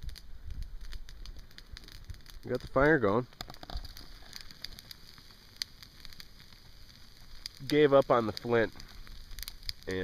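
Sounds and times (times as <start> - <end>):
campfire crackling: 0.0 - 10.0.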